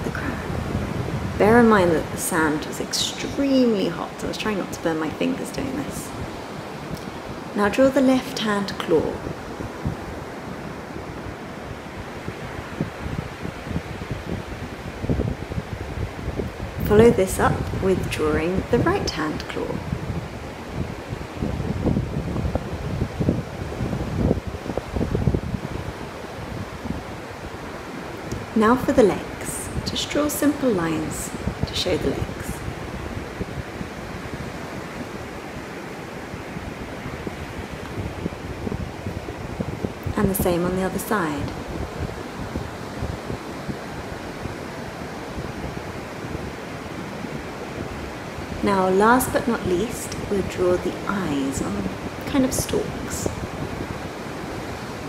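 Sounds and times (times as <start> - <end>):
ocean surf washing on beach: 0.0 - 55.0
wind buffeting microphone: 0.0 - 55.0.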